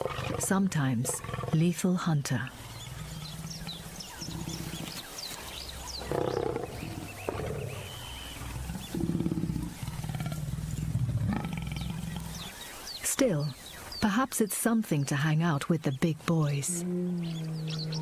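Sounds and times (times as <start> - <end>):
lions growling: 0.0 - 1.8, 2.4 - 12.6
small birds chirping: 0.0 - 18.0.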